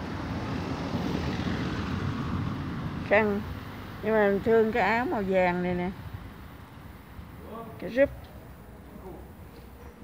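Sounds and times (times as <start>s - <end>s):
low outdoor rumble: 0.0s - 7.5s.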